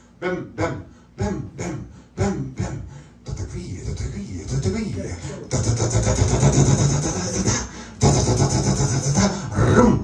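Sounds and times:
man making loud buzzing vocal drone: 5.4s - 10.0s.

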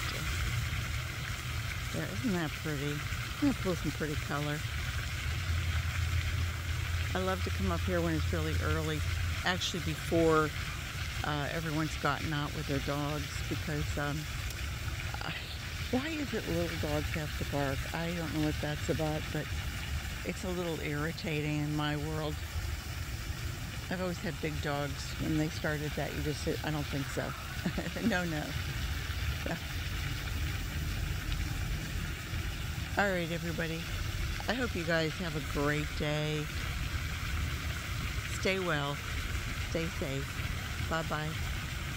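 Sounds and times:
fountain spray hissing: 0.0s - 41.9s
low steady rumble: 0.0s - 41.9s.

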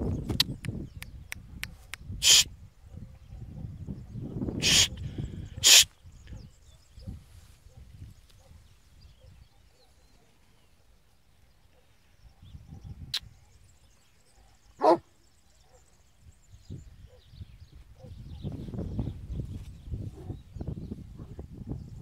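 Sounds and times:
dogs barking: 4.6s - 10.4s, 14.3s - 15.9s, 18.0s - 18.5s.

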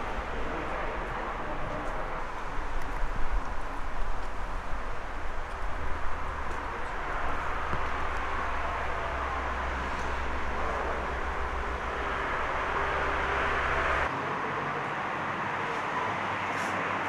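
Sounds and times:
low rumble: 0.0s - 14.1s
distant traffic: 0.0s - 17.0s.

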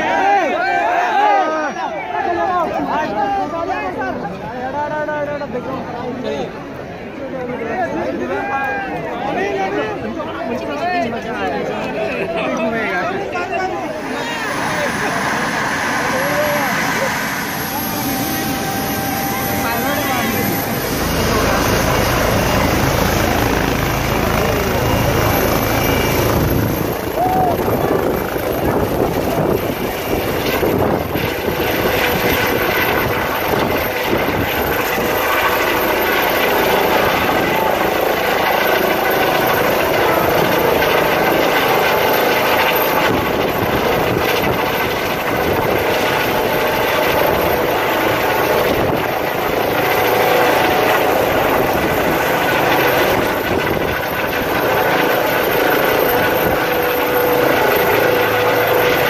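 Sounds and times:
helicopter engine and rotor: 0.0s - 59.0s.

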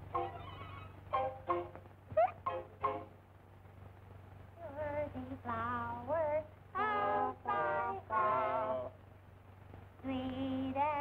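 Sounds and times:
soundtrack hiss and hum: 0.0s - 11.0s.

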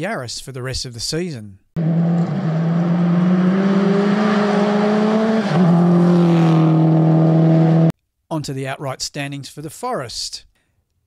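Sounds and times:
rally car engine pulling hard: 1.8s - 7.9s.

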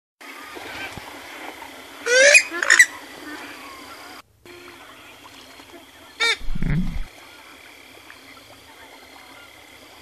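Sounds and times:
faint bird calls: 2.0s - 7.1s.

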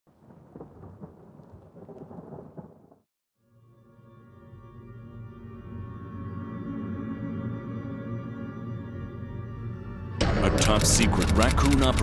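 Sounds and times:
rumbling with sharp crackles: 0.1s - 3.1s
droning music chord: 3.4s - 10.6s.

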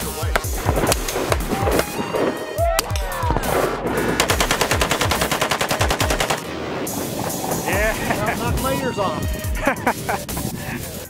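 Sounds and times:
music with heavy bass beat: 0.0s - 11.0s
automatic gunfire: 4.1s - 6.5s.

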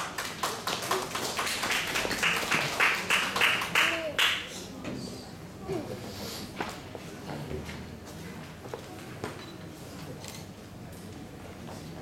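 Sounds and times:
light applause: 0.0s - 4.8s.

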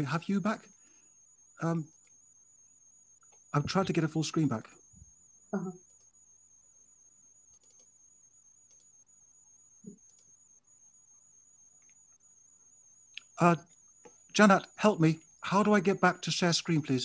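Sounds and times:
high-pitched electronic whine: 0.0s - 17.0s
faint clicks: 3.2s - 3.8s, 7.5s - 7.9s, 8.6s - 9.0s, 9.8s - 10.4s, 11.8s - 12.2s, 13.1s - 14.3s.

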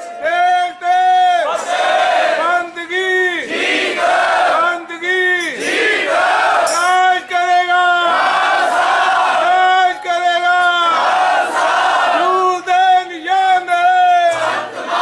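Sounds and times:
congregation chanting in chorus: 1.2s - 6.9s, 7.6s - 12.9s, 14.2s - 15.0s.

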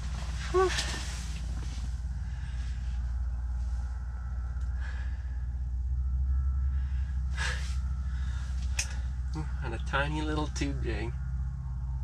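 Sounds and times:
steady low hum: 0.0s - 12.0s
man breathing hard: 2.0s - 3.5s, 4.6s - 6.0s, 6.6s - 9.3s.

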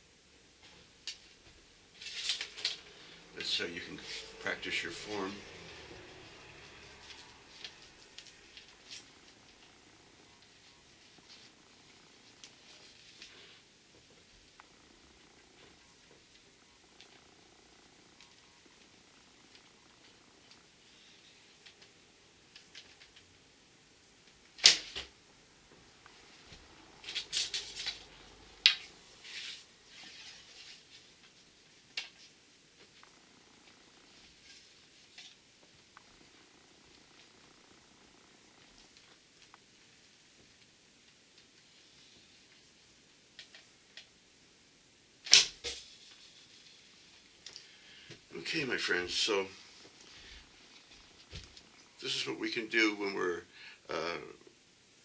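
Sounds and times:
handling bow and arrows: 2.0s - 5.2s.

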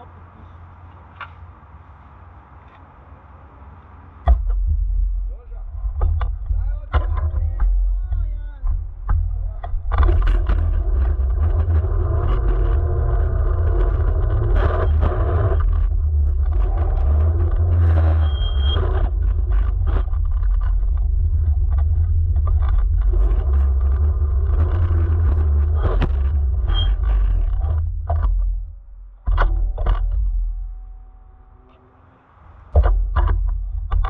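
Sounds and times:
tyres rumbling on asphalt: 0.0s - 34.0s
camera striking cones: 4.1s - 31.2s, 32.6s - 34.0s.

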